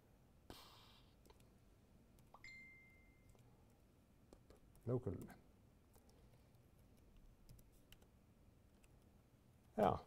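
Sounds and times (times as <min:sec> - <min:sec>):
computer keyboard keystrokes: 0:06.8 - 0:08.1.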